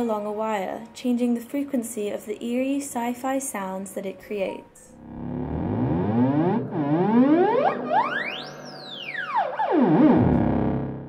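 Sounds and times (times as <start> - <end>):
electronic instrument gliding pitch: 5.0 - 11.0.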